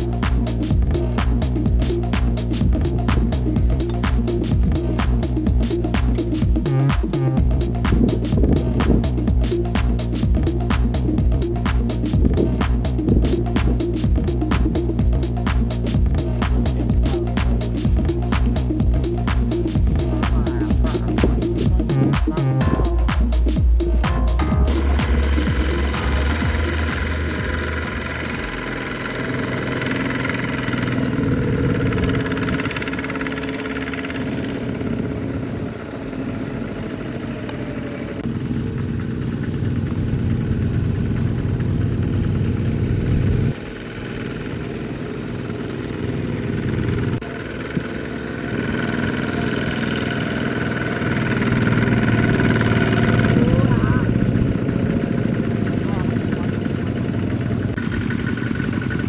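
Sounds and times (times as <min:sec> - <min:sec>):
diesel engine running under load: 0:00.0 - 0:59.0.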